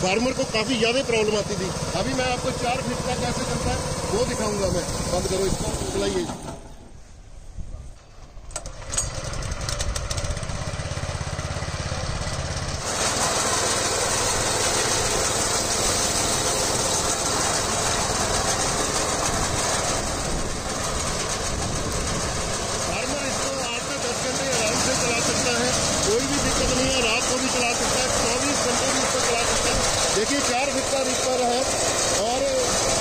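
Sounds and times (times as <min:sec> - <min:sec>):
small engine running: 0:00.0 - 0:06.8, 0:08.5 - 0:33.0.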